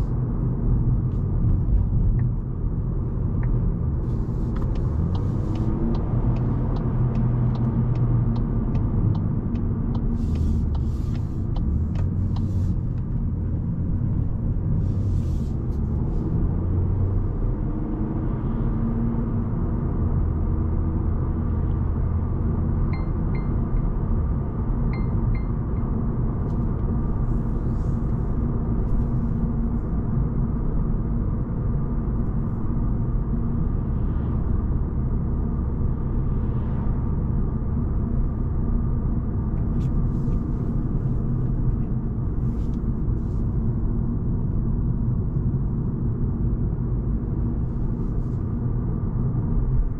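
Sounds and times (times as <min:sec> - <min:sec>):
car engine and tyre rumble: 0:00.0 - 0:49.9
light ticks: 0:04.5 - 0:13.1.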